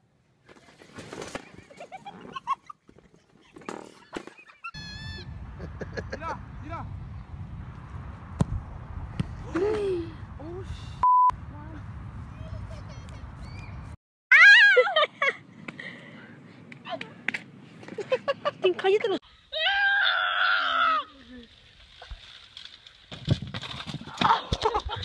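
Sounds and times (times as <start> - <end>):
wind rumbling on microphone: 5.0 - 14.0
censor bleep: 11.0 - 11.4.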